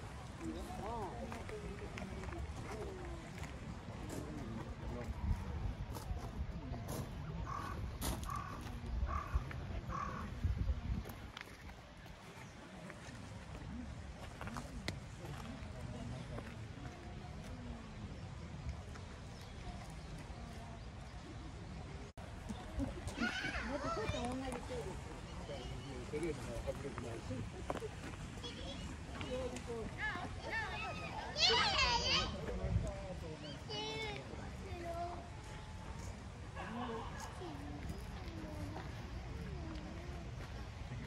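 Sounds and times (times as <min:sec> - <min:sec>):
distant chatter: 0:00.0 - 0:41.0
distant people talking: 0:00.0 - 0:41.0
low outdoor background noise: 0:00.0 - 0:41.0.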